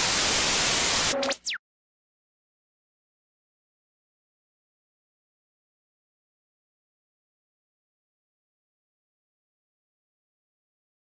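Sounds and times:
television static hiss: 0:00.0 - 0:01.6
electronic tone with pitch sweep: 0:01.1 - 0:01.6.

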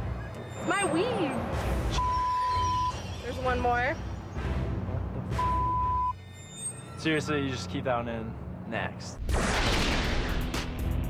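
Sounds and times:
background music with bass: 0:10.2 - 0:11.0.

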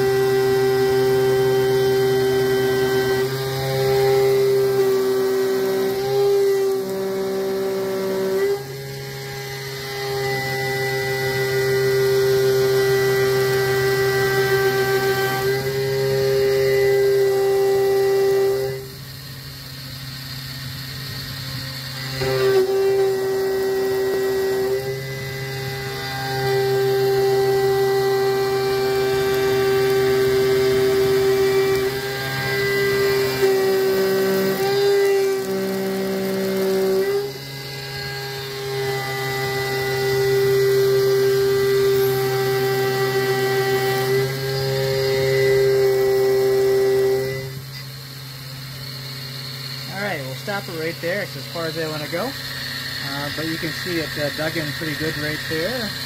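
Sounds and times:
milling machine cutting whine: 0:00.0 - 0:56.0.

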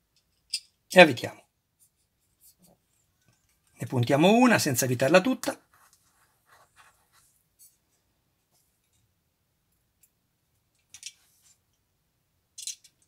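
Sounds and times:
plastic parts clicking: 0:10.8 - 0:11.2, 0:12.6 - 0:13.0.

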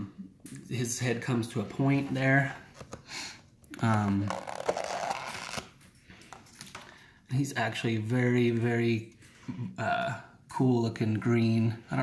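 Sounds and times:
plastic lid rustling and clicking: 0:02.7 - 0:03.1.

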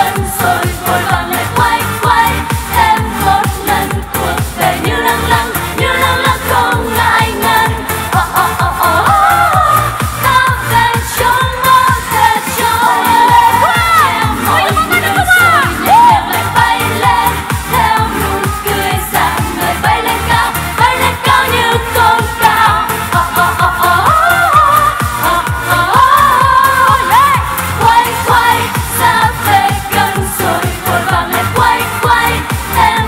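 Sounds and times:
dance-pop backing track: 0:00.0 - 0:33.0
women singing pop song: 0:00.0 - 0:33.0.

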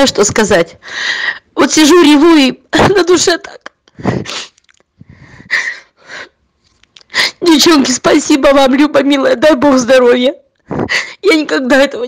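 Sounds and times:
woman sobbing: 0:02.7 - 0:06.4, 0:10.7 - 0:11.5.

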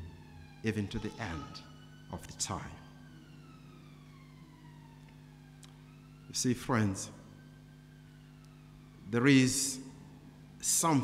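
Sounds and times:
faint siren wailing: 0:00.0 - 0:11.0
steady low hum: 0:00.0 - 0:11.0.

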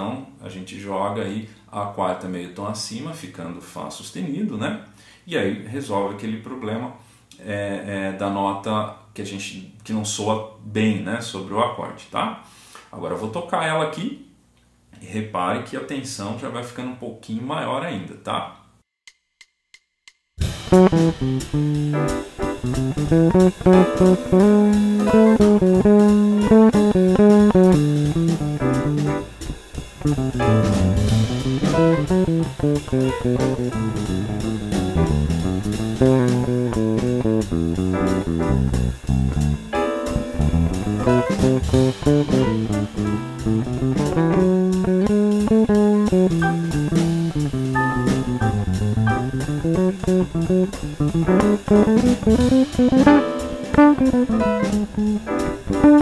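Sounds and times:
electric bass guitar melody: 0:20.4 - 0:56.0.

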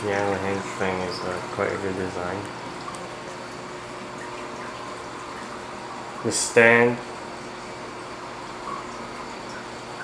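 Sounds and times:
faint steady hum: 0:00.0 - 0:10.0
water rushing in aquarium: 0:00.0 - 0:10.0.

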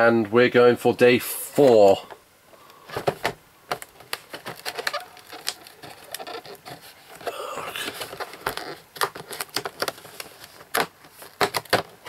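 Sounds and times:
cardboard crackling and scraping: 0:02.8 - 0:12.0.

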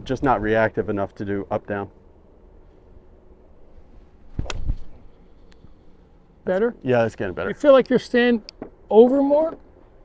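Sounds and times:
golf club striking ball: 0:04.3 - 0:04.9.

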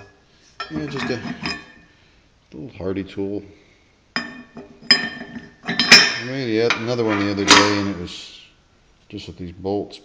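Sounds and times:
metal tool clinking on anvil: 0:04.2 - 0:08.0.

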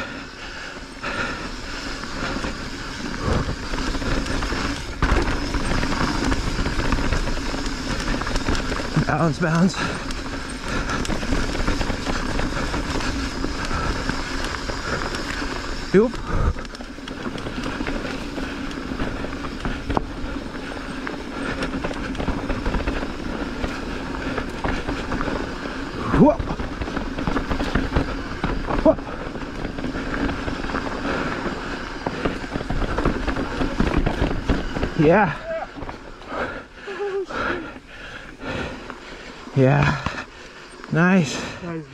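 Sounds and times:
bike rattling: 0:00.0 - 0:41.9
tyre noise on dirt: 0:00.0 - 0:41.9.

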